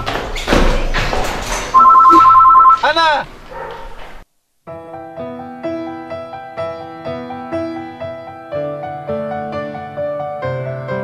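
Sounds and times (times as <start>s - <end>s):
telephone ringing: 1.7s - 3.0s.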